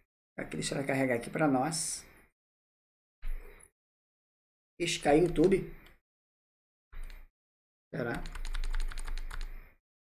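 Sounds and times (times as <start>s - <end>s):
fast typing on keyboard: 5.0s - 5.6s, 8.1s - 9.6s.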